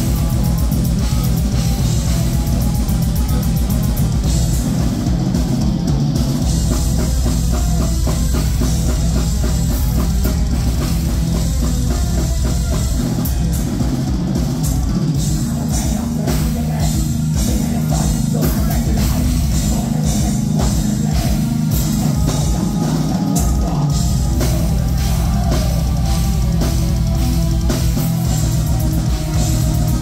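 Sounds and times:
distorted electric guitar: 0.0 - 30.0
heavy bass: 0.0 - 30.0
rapid drum kit strokes: 0.0 - 30.0.

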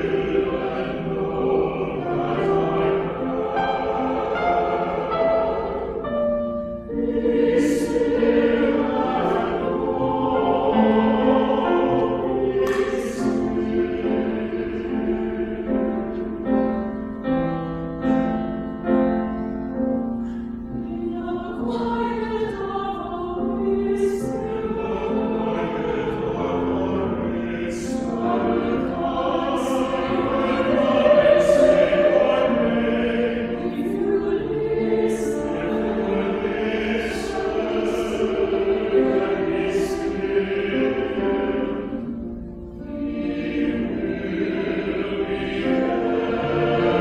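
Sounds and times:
choir singing held chords: 0.0 - 47.0.

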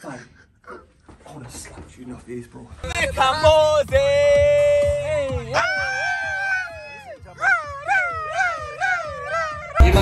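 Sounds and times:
club music with heavy bass: 2.8 - 10.0.

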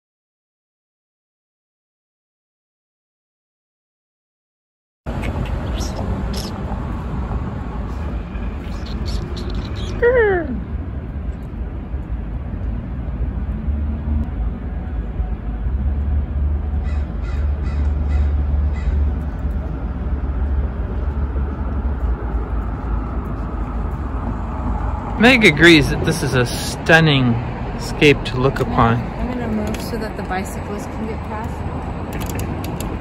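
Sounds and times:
low outdoor rumble: 5.1 - 33.0
crow cawing: 16.8 - 19.0.

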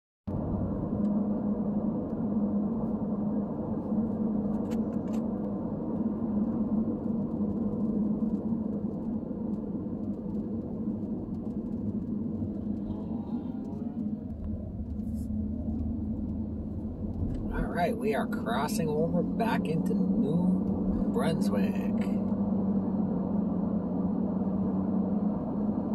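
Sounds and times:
car engine and tyre road noise: 0.3 - 25.9
low hum: 0.3 - 25.9.

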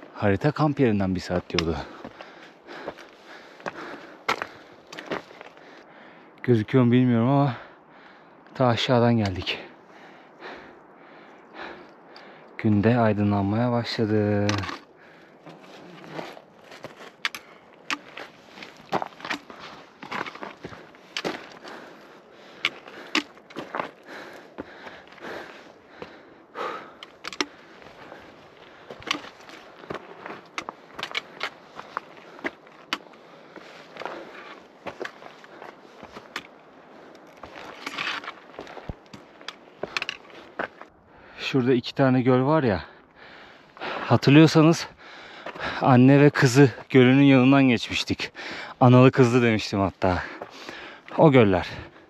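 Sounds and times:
footsteps on loose gravel: 0.0 - 5.8, 12.6 - 40.9, 48.8 - 52.0
trekking pole tips clicking on stone: 14.4 - 21.7, 22.5 - 24.0, 26.8 - 28.2, 28.8 - 33.2, 33.8 - 40.8.

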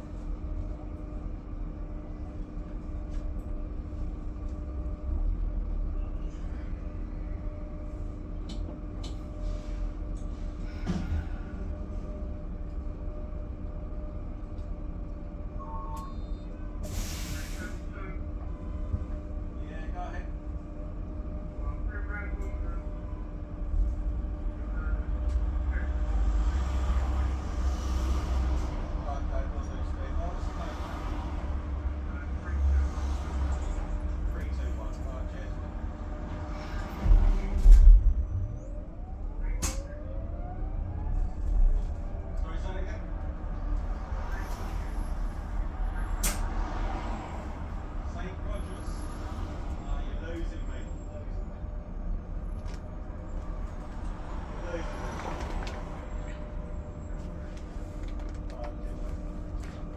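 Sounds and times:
bus road rumble: 0.0 - 59.9.

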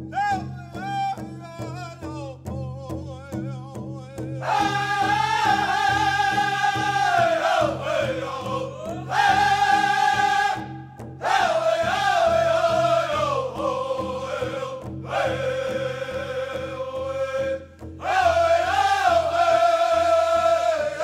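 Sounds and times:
group singing in unison: 4.4 - 21.0.

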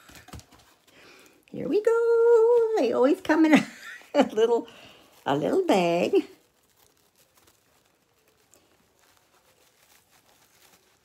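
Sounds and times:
fabric bag rustling: 0.0 - 11.0
small crinkles: 0.0 - 11.0.

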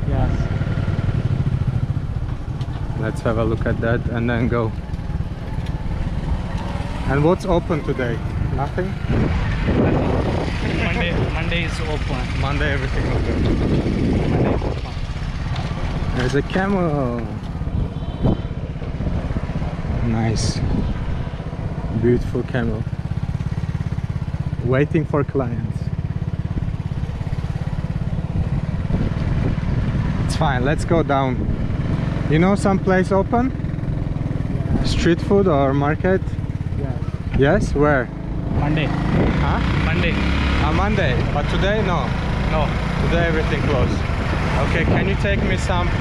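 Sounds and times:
motorcycle engine running: 0.0 - 46.0.

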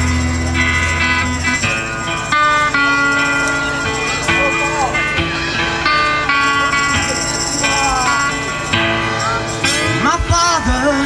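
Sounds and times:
live band playing slow song: 0.0 - 11.0.

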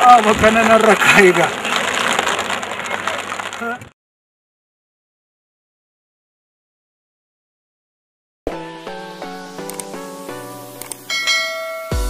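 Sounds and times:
bell-like notification chime: 11.1 - 12.0
tinkling jingle: 11.1 - 12.0.

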